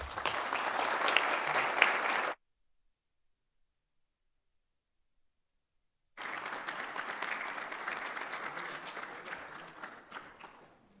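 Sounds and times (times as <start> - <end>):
audience applause: 0.0 - 2.4, 6.2 - 11.0.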